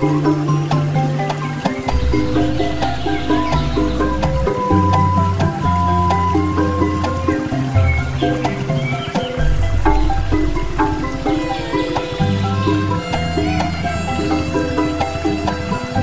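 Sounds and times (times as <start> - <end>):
instrumental background music: 0.0 - 16.0.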